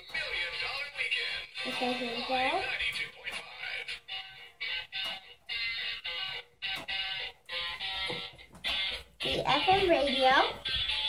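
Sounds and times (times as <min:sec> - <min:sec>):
tinny music from small speaker: 0:00.0 - 0:11.0.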